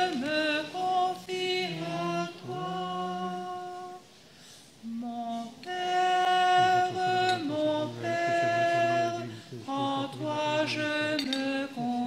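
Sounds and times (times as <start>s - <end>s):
slow hymn singing: 0.0s - 12.0s.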